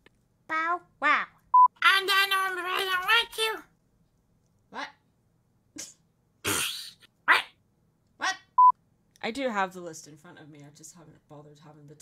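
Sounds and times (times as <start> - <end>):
person imitating a dog: 5.8 - 7.6, 8.2 - 8.5.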